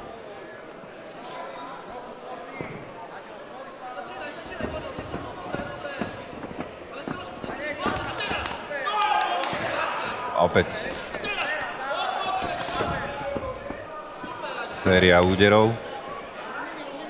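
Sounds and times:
thuds of footwork and punches: 4.5 - 8.6
coaches shouting: 7.1 - 15.6.

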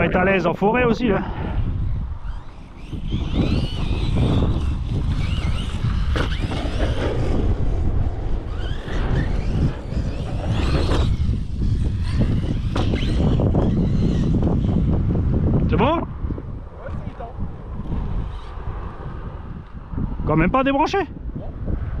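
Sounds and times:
wind noise on microphone: 0.0 - 22.0
rc truck motor whining: 1.5 - 15.5, 17.8 - 19.8.

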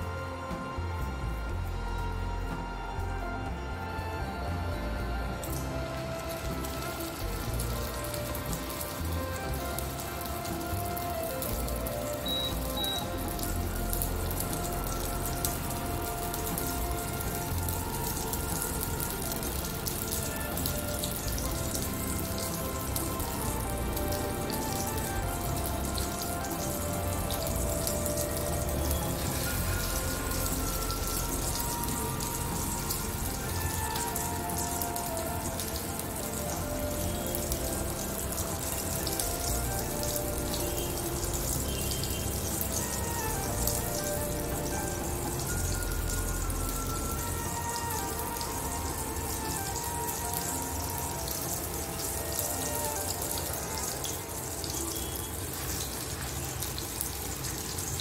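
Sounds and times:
background music: 0.0 - 58.0
meat sizzling in oil: 5.4 - 58.0.

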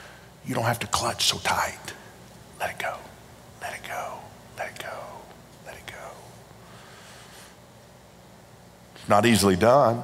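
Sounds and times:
faint room hum: 0.0 - 10.0
man whispering: 0.4 - 6.5.

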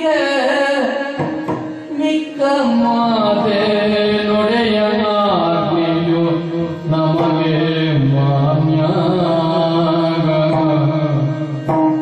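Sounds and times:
person singing long wavering notes: 1.9 - 12.0.

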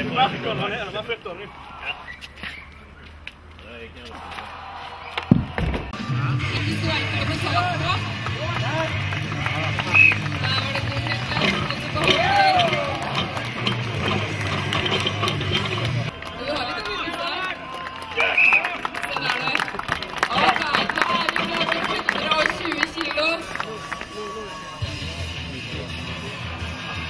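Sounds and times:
voices calling and shouting: 0.0 - 27.0
background music: 5.9 - 17.7.

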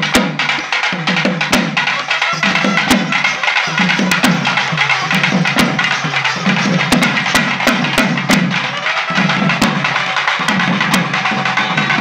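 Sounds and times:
folk drums dance rhythm: 0.0 - 12.0.

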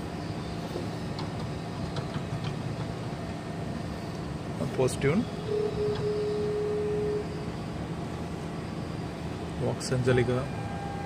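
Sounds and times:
mechanical hum and rumble: 0.0 - 11.0.

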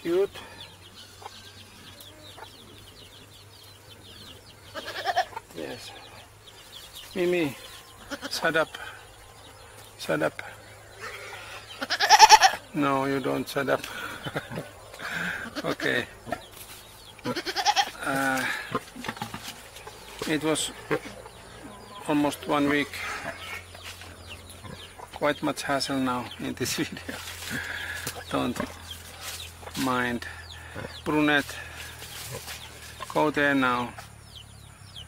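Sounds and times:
goat bleating: 4.7 - 5.4, 8.0 - 8.6, 11.1 - 12.6, 15.2 - 16.1, 17.2 - 18.5.

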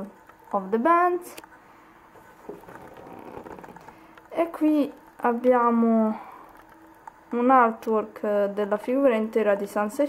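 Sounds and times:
cardboard box crackling: 2.4 - 4.1.

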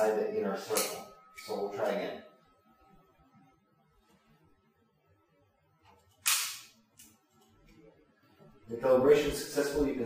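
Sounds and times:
pistol shot crack: 6.2 - 6.7.

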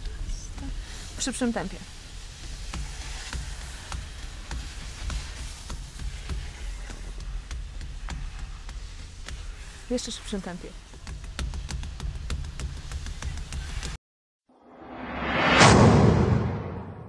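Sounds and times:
hands drumming on padded bar: 10.7 - 14.0.

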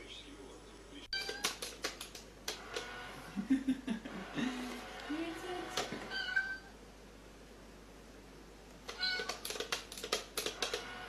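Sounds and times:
cat meowing: 6.1 - 6.7, 8.9 - 9.4.

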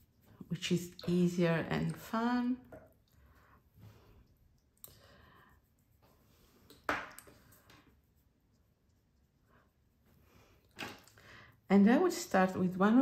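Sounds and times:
paintbrush scrubbing on paper: 0.0 - 2.6, 5.5 - 6.8, 7.4 - 10.6.

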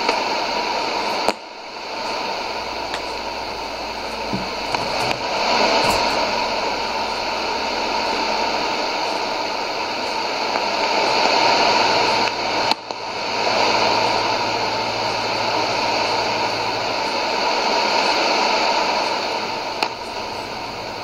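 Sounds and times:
radio static hiss: 0.0 - 21.0.

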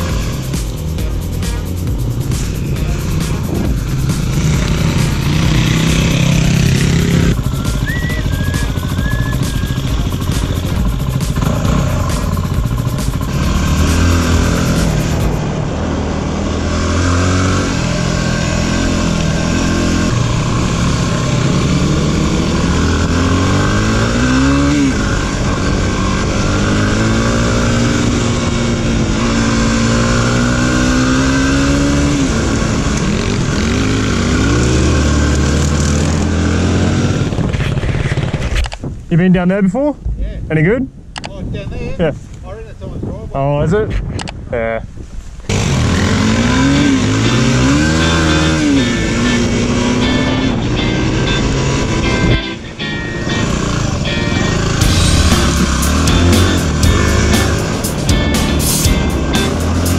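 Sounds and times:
tyre noise: 0.0 - 15.5
motorcycle engine accelerating: 0.0 - 38.7, 45.5 - 59.9
wind noise: 1.8 - 47.4
dirt motorcycles riding past: 2.3 - 38.6, 45.5 - 52.4.

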